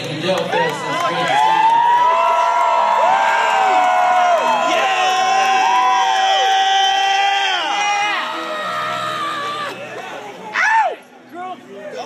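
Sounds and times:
concert crowd cheering and whooping: 0.5s - 9.8s.

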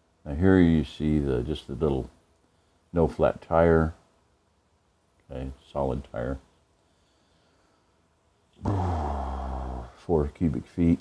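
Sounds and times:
man clearing his throat: 8.6s - 9.9s.

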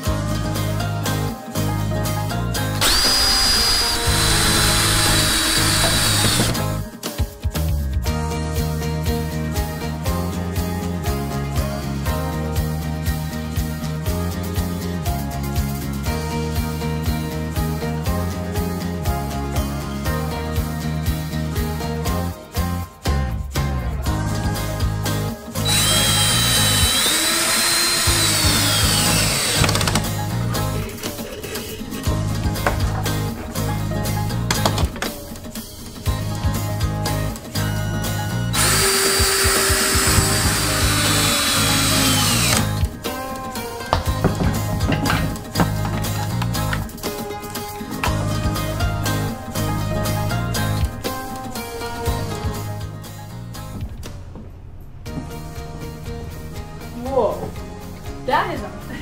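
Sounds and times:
background music: 0.0s - 59.0s
power drill boring into wood: 2.8s - 6.8s, 25.6s - 30.1s, 38.6s - 42.8s.

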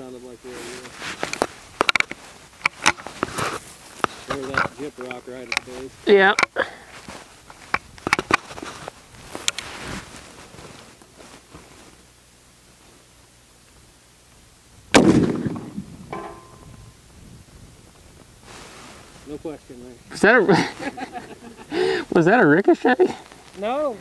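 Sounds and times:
rifle shot: 14.9s - 16.7s.

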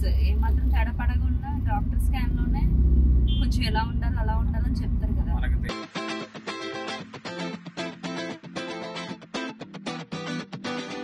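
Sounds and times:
woman talking: 0.0s - 2.7s, 3.4s - 5.6s
car interior rumble: 0.0s - 5.7s.

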